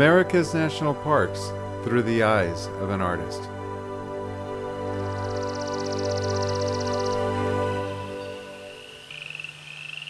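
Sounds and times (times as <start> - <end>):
soft music: 0.0 - 9.7.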